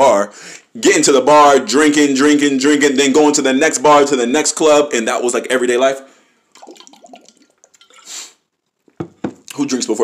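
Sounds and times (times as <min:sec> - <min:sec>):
person gulping water: 0:06.5 - 0:08.2
wet liquid sounds at bottle: 0:06.5 - 0:08.4.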